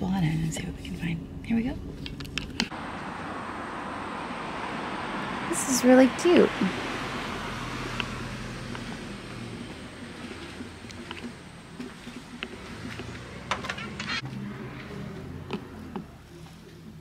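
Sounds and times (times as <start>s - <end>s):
road traffic: 1.2s - 17.0s.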